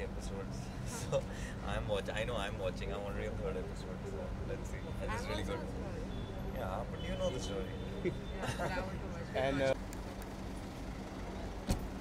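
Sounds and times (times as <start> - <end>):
car door shutting: 11.6 - 12.0.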